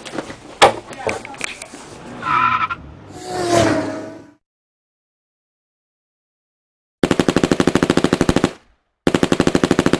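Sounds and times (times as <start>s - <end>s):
rapid burst of sharp shots: 7.0s - 9.9s.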